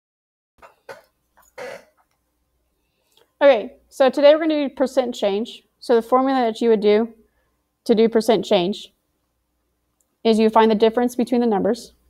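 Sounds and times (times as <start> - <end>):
person clearing throat: 0.6 - 2.0
person coughing: 0.6 - 2.0.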